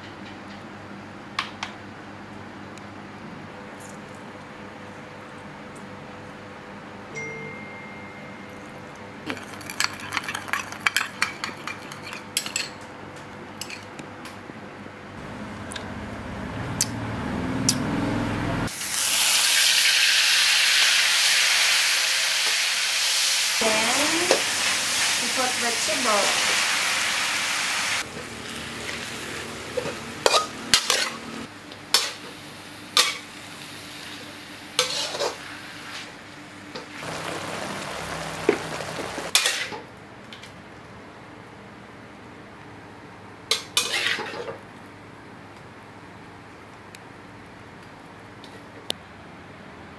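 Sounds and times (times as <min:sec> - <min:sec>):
low hum: 0:15.2 - 0:18.7
food sizzling in a wok: 0:18.7 - 0:36.2, 0:37.0 - 0:39.8
spatula scraping a wok: 0:29.8 - 0:31.2, 0:34.8 - 0:35.4, 0:43.8 - 0:44.6
metal spatula scraping a wok: 0:34.8 - 0:35.4, 0:43.8 - 0:44.5.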